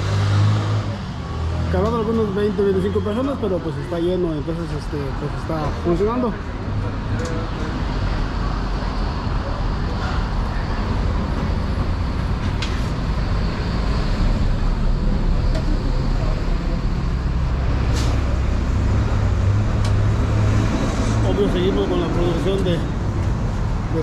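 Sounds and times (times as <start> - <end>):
low rumble of road traffic: 0.0 - 24.0.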